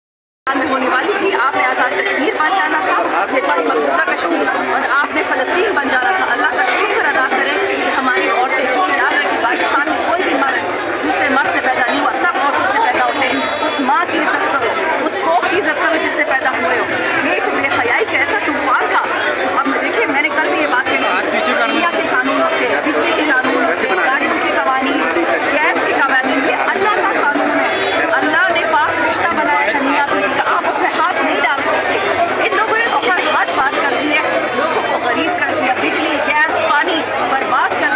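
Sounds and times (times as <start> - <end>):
woman talking: 0.5 - 27.5, 28.1 - 37.9
crowd chatter: 0.5 - 37.9.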